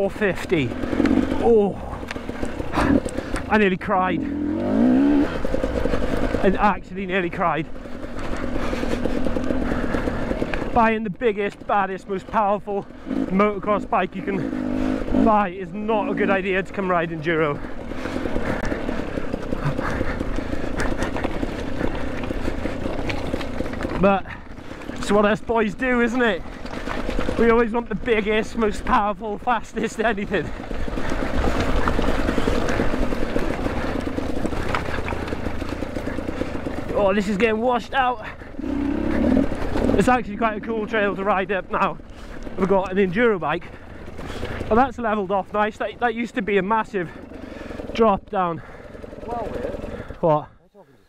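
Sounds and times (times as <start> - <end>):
two-stroke dirt bike engine: 0.0 - 50.8.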